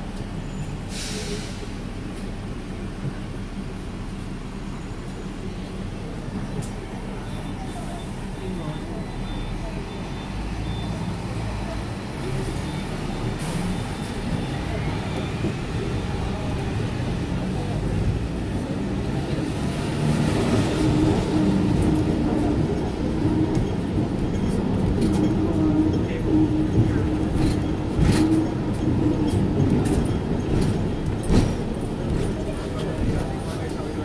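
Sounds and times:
tram rumbling on rails: 0.0 - 34.0.

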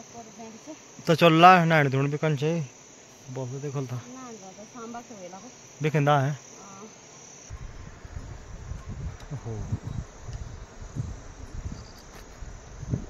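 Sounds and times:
insects chirring: 0.0 - 13.0
low rumble on microphone: 7.5 - 13.0.

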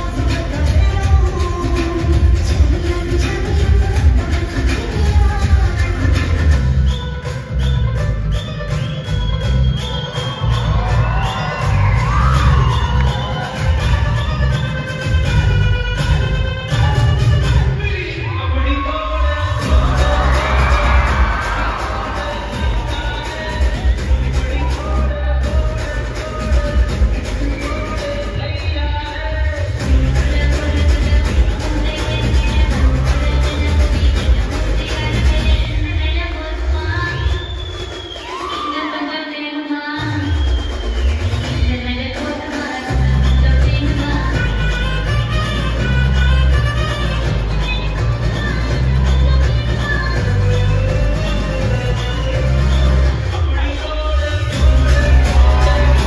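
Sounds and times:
dance song with heavy beat: 0.0 - 56.0
audience cheering and whooping: 9.8 - 14.6, 18.2 - 25.6, 37.2 - 39.2, 54.5 - 56.0.

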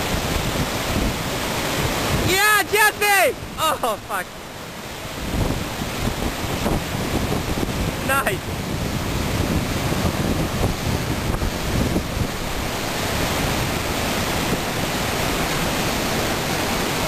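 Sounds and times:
river rapids roaring over rock: 0.0 - 17.0.

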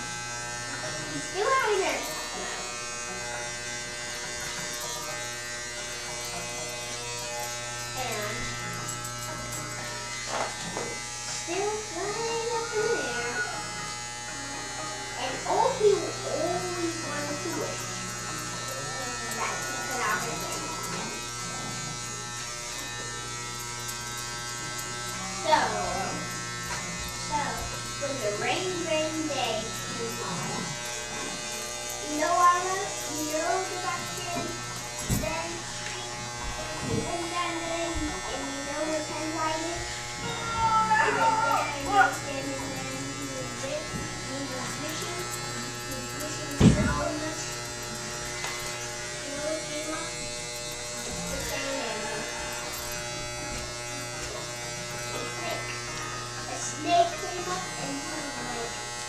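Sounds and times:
electric hair clippers buzzing: 0.0 - 59.0.

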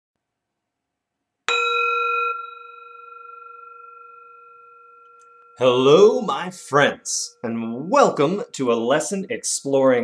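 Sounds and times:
singing bowl ringing: 1.5 - 8.1.

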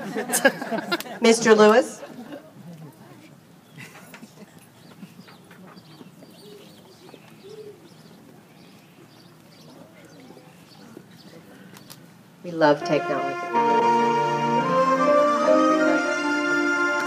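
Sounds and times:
murmur of crowd voices: 0.0 - 17.0
faint birds chirping: 2.4 - 12.2.

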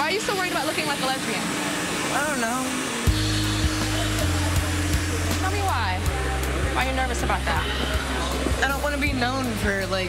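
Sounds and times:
hair dryer blowing: 0.0 - 10.0
deep sustained bass music: 3.0 - 10.0.

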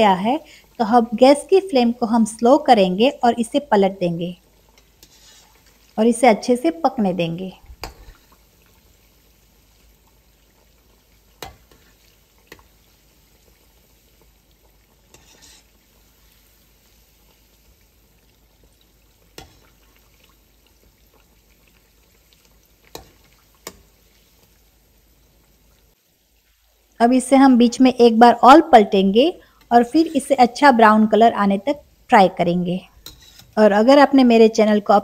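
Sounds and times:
food deep-frying in oil: 0.0 - 35.0.

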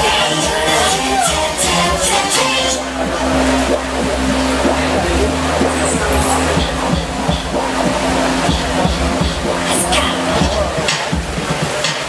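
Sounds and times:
loud music with deep bass: 0.0 - 12.0.

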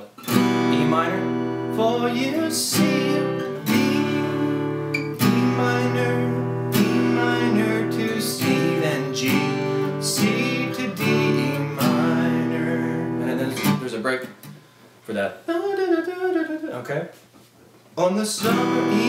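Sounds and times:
acoustic guitar strumming: 0.0 - 14.8, 18.4 - 19.0.

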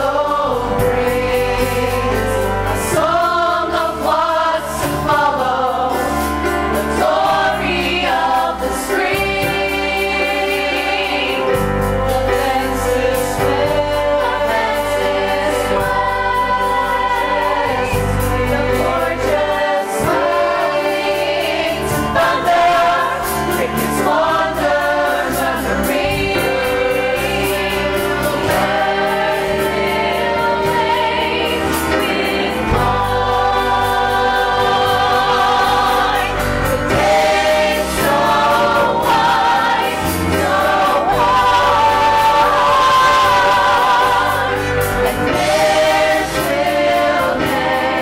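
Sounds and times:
cast singing in choral harmony: 0.0 - 48.0.

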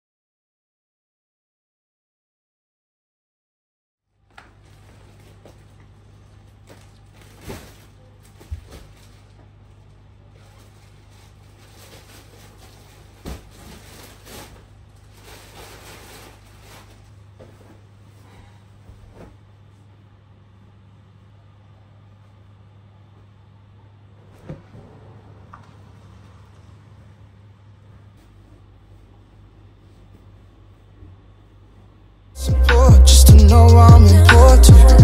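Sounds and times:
plastic bag and bedding rustling: 4.2 - 20.0
steady low hum: 4.2 - 35.0.

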